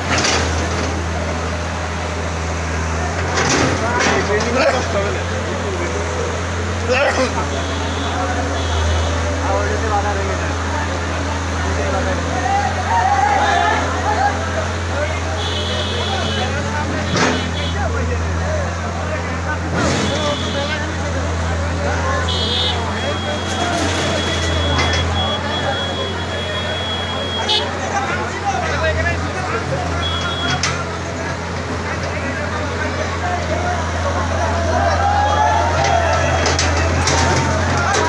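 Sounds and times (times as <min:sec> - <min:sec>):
crowd chatter: 0:00.0 - 0:38.0
excavator diesel engine droning: 0:00.0 - 0:38.0.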